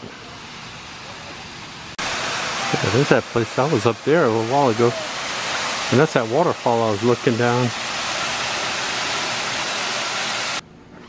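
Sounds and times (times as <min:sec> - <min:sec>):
steady background hiss: 0:00.0 - 0:11.0
waterfall rushing: 0:00.2 - 0:10.6
man speaking: 0:02.6 - 0:05.1, 0:05.9 - 0:07.7.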